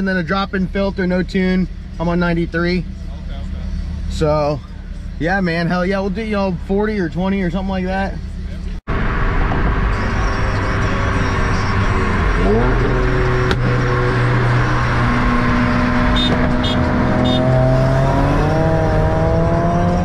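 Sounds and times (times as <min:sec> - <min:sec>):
road and wind noise: 0:00.0 - 0:20.0
car engine accelerating hard: 0:08.3 - 0:20.0.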